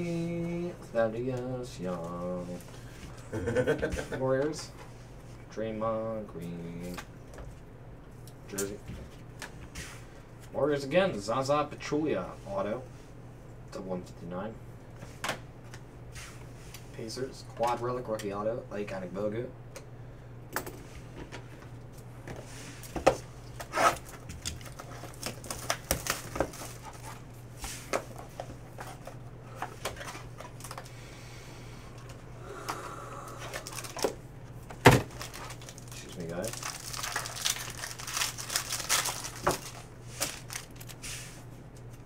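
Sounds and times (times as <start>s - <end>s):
steady low hum: 0.0s - 42.0s
crinkling: 23.6s - 27.3s, 33.4s - 41.1s.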